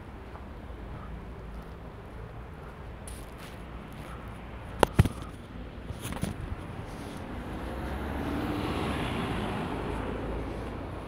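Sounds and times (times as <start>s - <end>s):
car driving past: 6.8s - 11.0s.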